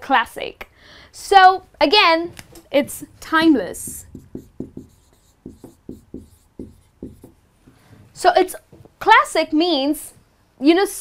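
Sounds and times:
marker writing on whiteboard: 0:02.2 - 0:08.0.

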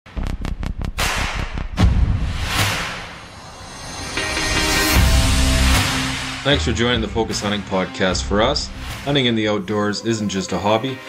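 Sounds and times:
noisy whoosh: 0:00.1 - 0:07.9
hard hits with low boom: 0:00.1 - 0:09.2.

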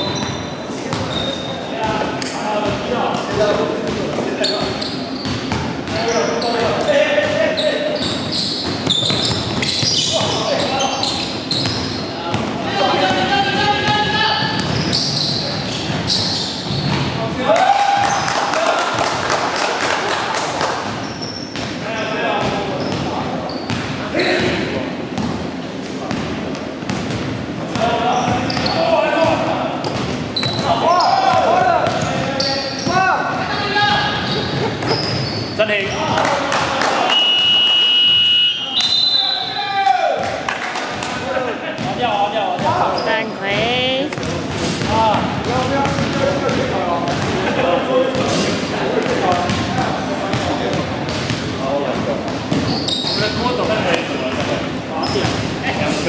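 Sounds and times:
shoes squeaking: 0:00.0 - 0:02.2, 0:04.2 - 0:13.2, 0:13.9 - 0:17.2, 0:28.1 - 0:28.9, 0:29.9 - 0:33.1, 0:33.9 - 0:36.3, 0:52.5 - 0:55.4
players' voices echoing: 0:00.0 - 0:21.0, 0:39.5 - 0:56.0
basketball bouncing: 0:08.6 - 0:10.4, 0:13.9 - 0:15.0, 0:44.1 - 0:47.4, 0:49.0 - 0:52.8
short trilling whistle: 0:37.1 - 0:39.5.

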